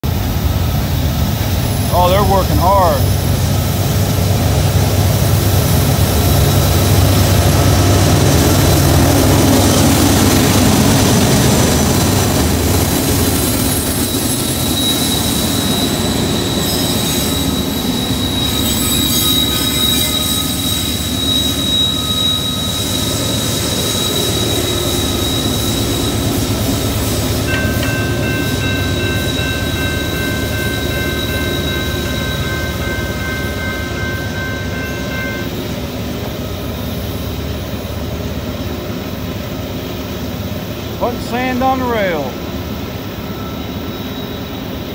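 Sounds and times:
diesel locomotives working hard: 0:00.0 - 0:44.9
high wheel squeal: 0:13.4 - 0:37.1, 0:43.2 - 0:44.9.

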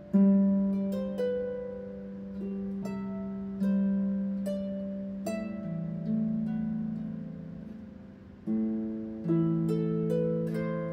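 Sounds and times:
harp melody notes: 0:00.0 - 0:10.9.

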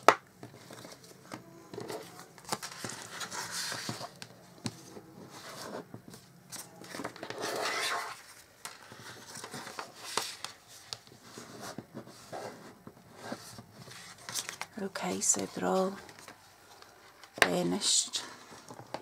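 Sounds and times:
paper clicks and rustles: 0:00.4 - 0:12.6, 0:13.2 - 0:17.4.

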